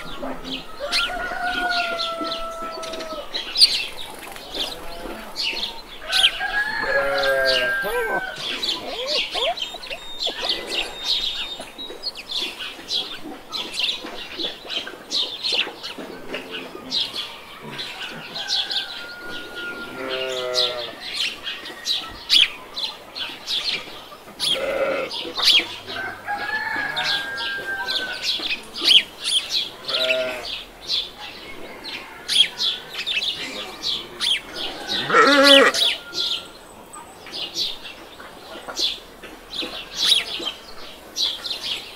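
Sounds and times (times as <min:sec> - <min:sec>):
chickens squawking and clucking: 0:00.0 - 0:37.0
small birds chirping: 0:00.0 - 0:41.9.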